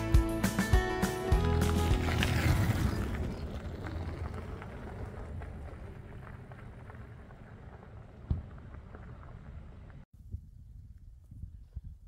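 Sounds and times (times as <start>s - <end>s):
background music: 0.0s - 2.6s
bike tyres rolling on wooden planks: 1.4s - 10.0s.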